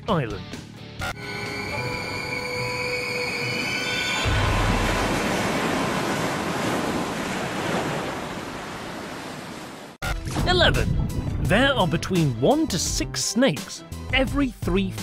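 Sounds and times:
rushing surf-like noise: 0:03.8 - 0:09.8
deep boom: 0:10.2 - 0:11.8.

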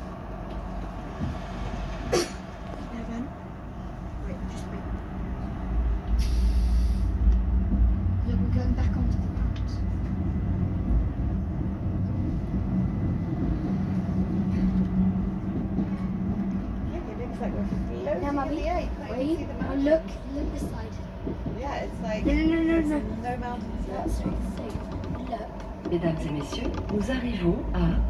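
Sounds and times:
train wheels rumbling on track: 0:00.0 - 0:28.0
short hiss: 0:06.2 - 0:07.1.

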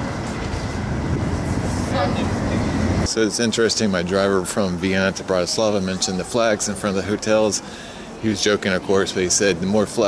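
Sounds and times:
tram rumbling past: 0:00.0 - 0:08.3
street traffic noise: 0:00.0 - 0:10.0.

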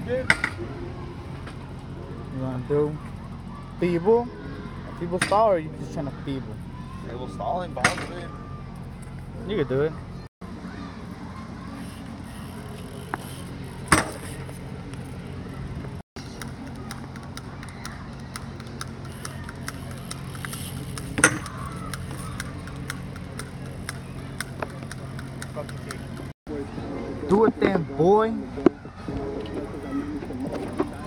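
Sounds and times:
steady low hum: 0:00.0 - 0:31.0
bike striking an obstacle: 0:00.1 - 0:00.7, 0:02.7 - 0:05.7, 0:07.7 - 0:09.3, 0:11.8 - 0:14.8, 0:15.9 - 0:26.3.

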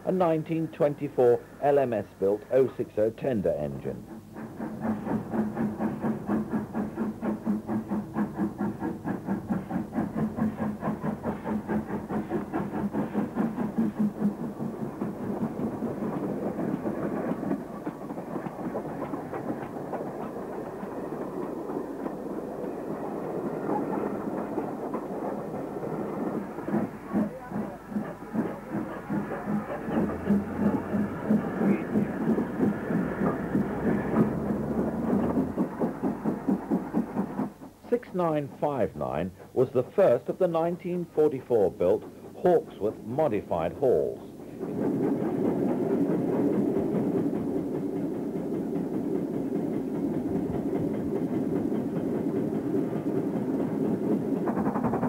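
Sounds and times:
steam locomotive chuffing: 0:00.0 - 0:55.0.

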